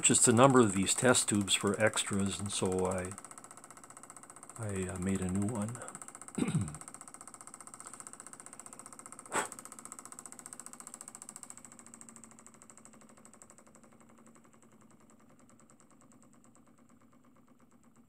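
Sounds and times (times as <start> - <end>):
small engine fast ticking: 0.0 - 18.0.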